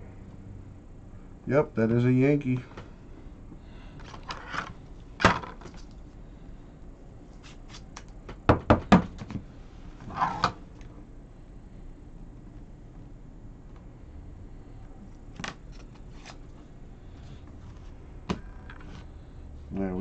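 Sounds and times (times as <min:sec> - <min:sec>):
cards scraping rustle: 0:07.3 - 0:08.0, 0:15.7 - 0:16.6.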